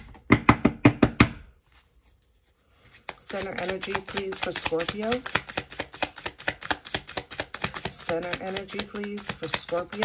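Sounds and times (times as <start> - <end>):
cards being shuffled: 1.8 - 10.0.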